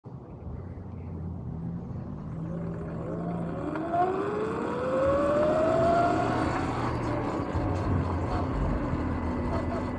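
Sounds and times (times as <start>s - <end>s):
road and wind noise: 0.0s - 9.9s
electric motor whine: 2.3s - 9.9s.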